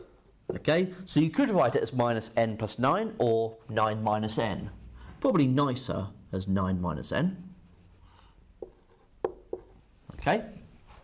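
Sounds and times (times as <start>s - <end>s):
marker squeaking on whiteboard: 0.0s - 0.5s.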